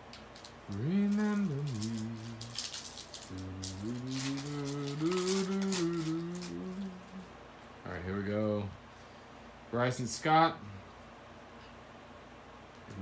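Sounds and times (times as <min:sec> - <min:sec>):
trading cards rustling and flicking: 0:00.0 - 0:07.2
man humming a tune: 0:00.7 - 0:07.4.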